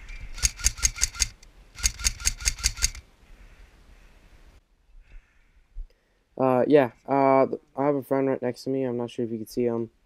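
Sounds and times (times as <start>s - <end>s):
airsoft rifle rapid shots: 0.4s - 3.0s.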